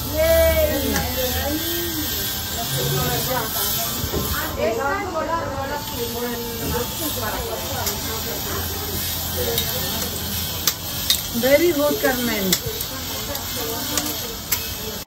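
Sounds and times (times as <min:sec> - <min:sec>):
people talking indistinctly: 0:00.0 - 0:15.0.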